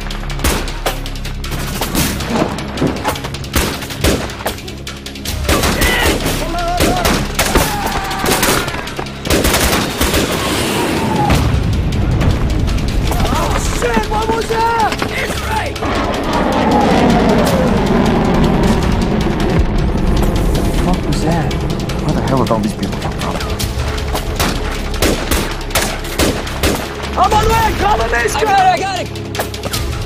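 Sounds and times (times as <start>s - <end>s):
explosion rumble: 1.9s - 4.4s, 6.8s - 28.3s.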